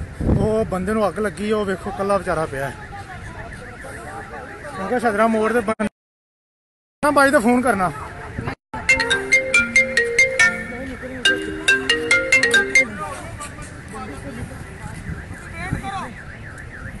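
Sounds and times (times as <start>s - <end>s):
mobile phone ringtone: 8.8s - 13.2s.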